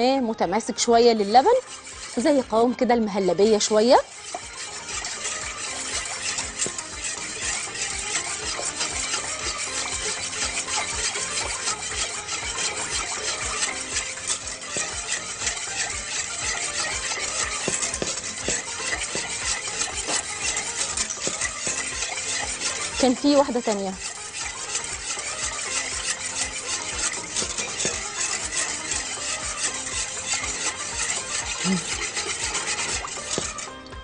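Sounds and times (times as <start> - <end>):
whisk stirring in a saucepan: 0.0 - 34.0.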